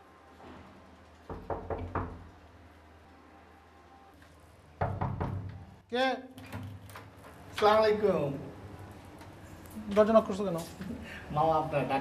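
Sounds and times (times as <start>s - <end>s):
knuckles knocking on wooden door: 1.3s - 2.2s.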